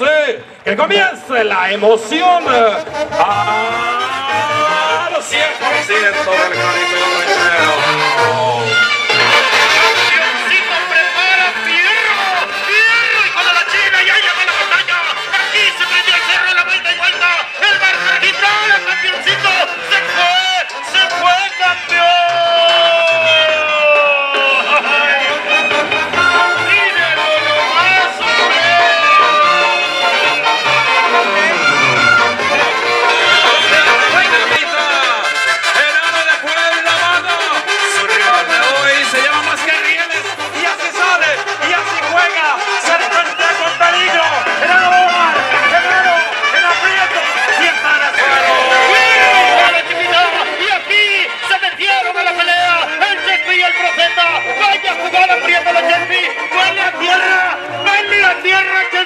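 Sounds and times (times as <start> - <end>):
brass band music: 0.0 - 59.0
repeating bass notes: 2.1 - 11.7, 21.1 - 35.6, 36.2 - 58.7
background voices: 24.6 - 32.9.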